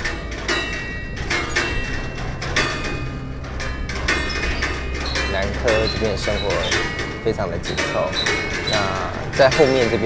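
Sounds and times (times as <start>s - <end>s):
metal tube chimes melody: 0.4s - 10.0s.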